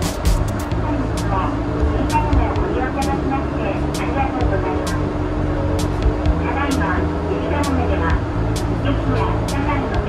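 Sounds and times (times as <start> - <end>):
steady hum: 0.0 - 10.0
train rumble: 0.0 - 10.0
person speaking: 6.4 - 10.0.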